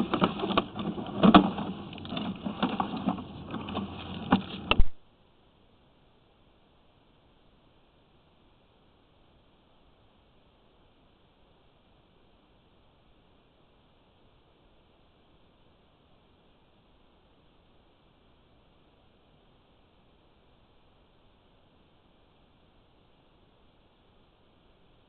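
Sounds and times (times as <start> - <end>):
camera gear knocking and rattling: 0.0 - 4.9.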